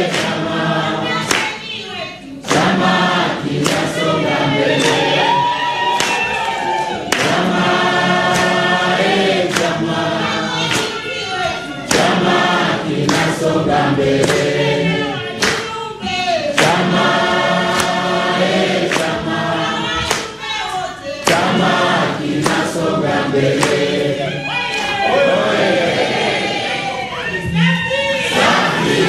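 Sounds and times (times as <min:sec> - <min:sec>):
crowd singing in chorus: 0:00.0 - 0:29.0.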